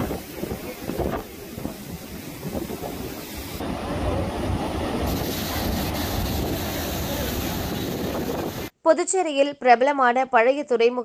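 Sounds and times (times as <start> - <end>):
wind buffeting microphone: 0.0 - 8.7.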